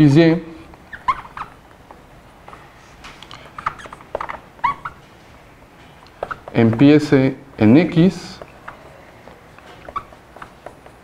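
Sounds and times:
marker squeaking on whiteboard: 0.4 - 11.0.

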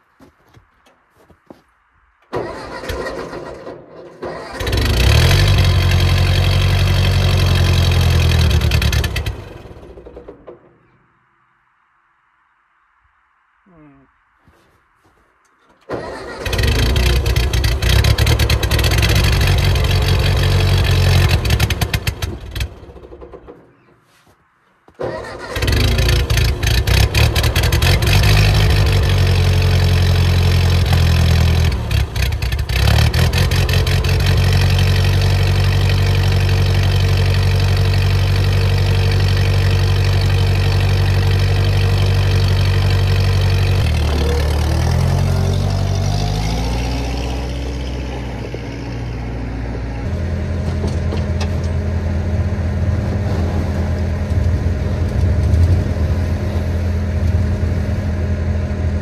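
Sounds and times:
tractor engine running: 0.0 - 11.4, 15.0 - 24.0, 24.8 - 59.0.

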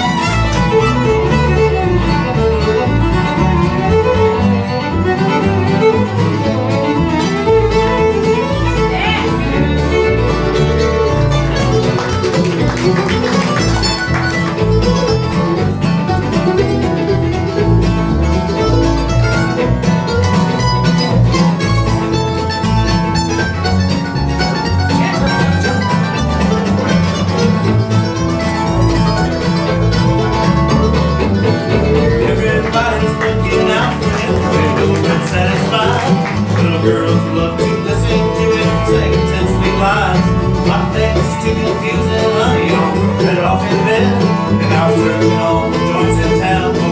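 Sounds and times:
bluegrass band playing: 0.0 - 46.9
fiddle: 0.0 - 46.9
mandolin: 0.0 - 46.9
strummed acoustic guitar: 0.0 - 46.9
upright bass: 0.0 - 46.9.

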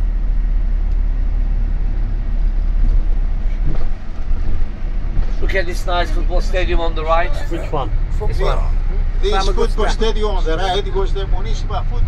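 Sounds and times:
engine and road noise rumble: 0.0 - 12.0.

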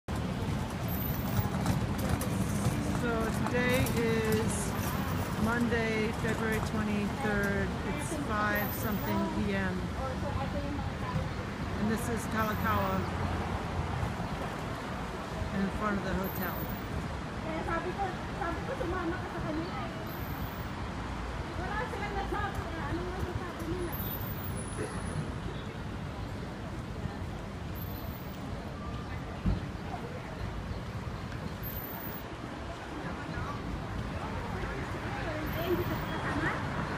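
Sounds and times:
low street rumble: 0.1 - 36.9.

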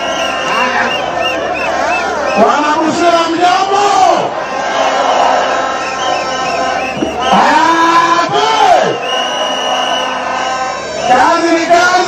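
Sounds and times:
crowd shouting and cheering: 0.0 - 12.0
man shouting through loudspeaker: 2.1 - 4.4, 7.1 - 9.1, 10.7 - 12.0.

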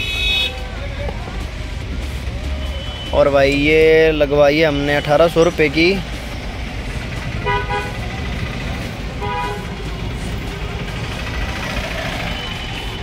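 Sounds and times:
vehicle horn toots: 0.0 - 0.6, 7.4 - 8.0, 9.2 - 9.7
traffic rumble: 0.0 - 13.0.

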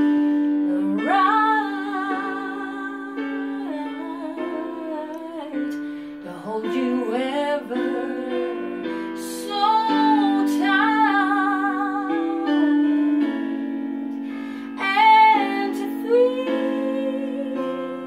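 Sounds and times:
instrumental backing track: 0.0 - 18.0
woman singing a slow ballad: 0.0 - 18.0.

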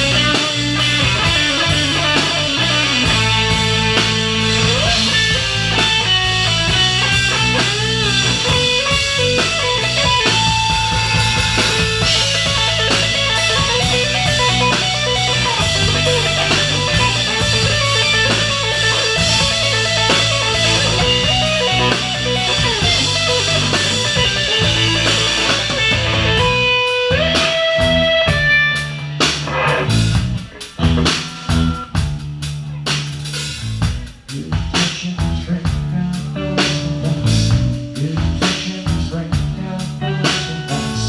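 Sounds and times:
live rock band playing: 0.0 - 41.0.

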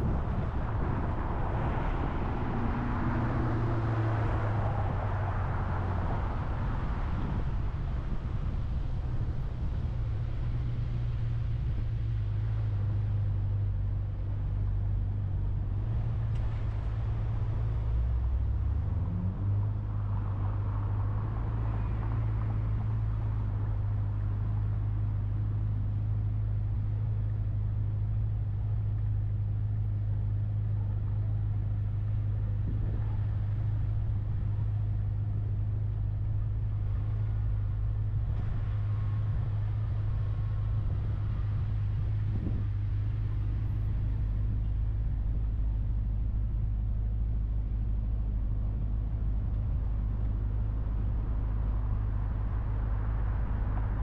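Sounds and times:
car cabin road rumble: 0.0 - 54.0
traffic passing: 0.0 - 54.0.

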